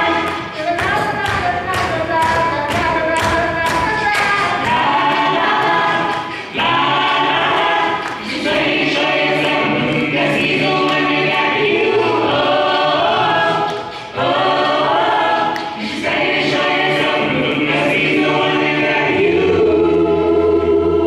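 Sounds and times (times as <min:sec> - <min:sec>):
gospel group singing in harmony: 0:00.0 - 0:21.0.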